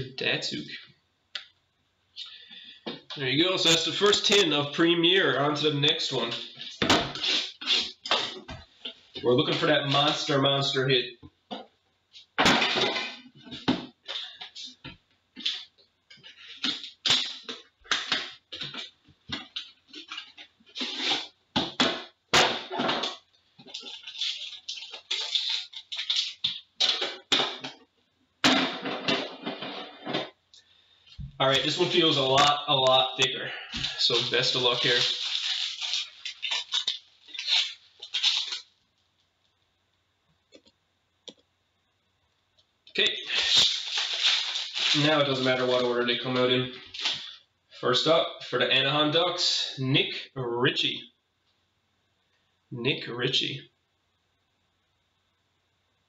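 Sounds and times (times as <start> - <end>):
foil wrapper crinkling and tearing: 15.4 - 21.4, 22.8 - 27.7, 33.7 - 38.8, 43.1 - 47.4.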